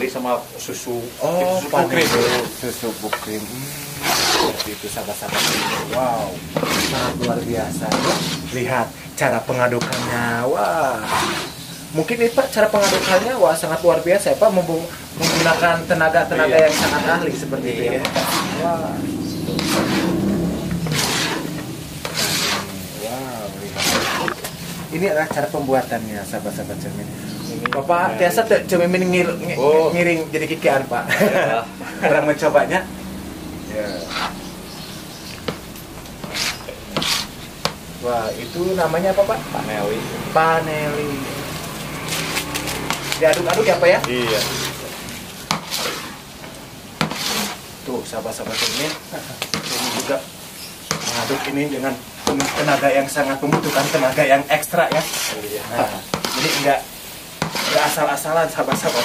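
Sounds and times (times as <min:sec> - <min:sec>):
wooden paddle scraping a wok: 0:01.2 - 0:26.7, 0:33.6 - 0:59.0.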